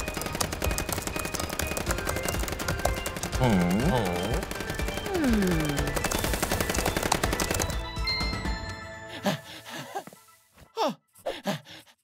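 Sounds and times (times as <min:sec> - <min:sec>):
rapid laptop keyboard typing: 0:00.0 - 0:07.8
background music: 0:00.0 - 0:12.0.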